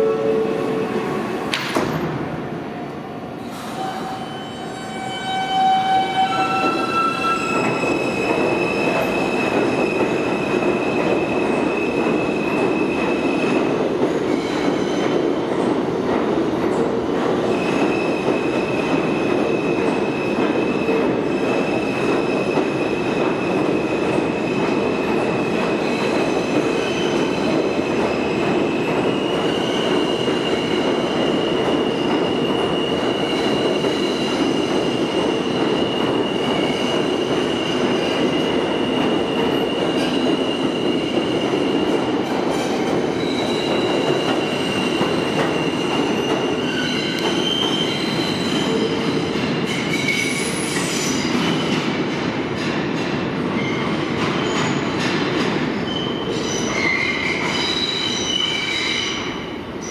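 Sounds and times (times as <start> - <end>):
subway train rumble: 0.0 - 59.9.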